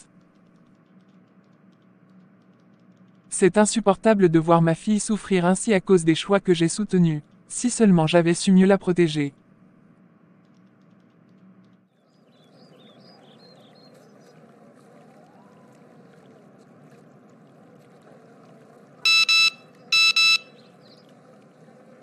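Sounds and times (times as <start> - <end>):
running water: 12.1 - 22.0
electronic double beep alert: 19.1 - 20.6.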